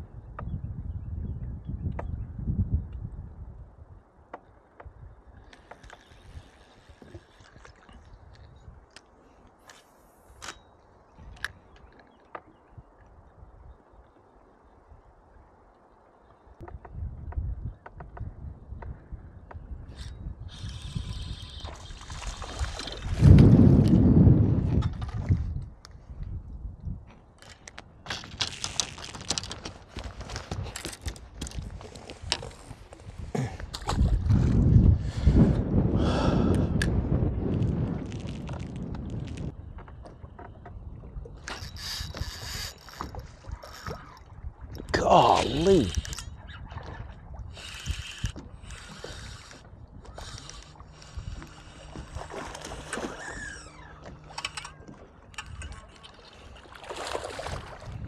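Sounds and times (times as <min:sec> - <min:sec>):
wind gusting over microphone: 0:00.0 - 0:04.1, 0:16.6 - 0:54.7, 0:55.3 - 0:58.0
water lapping at boat hull: 0:04.3 - 0:13.2, 0:15.6 - 0:26.1, 0:38.0 - 0:58.0
small clicks: 0:47.6 - 0:56.4.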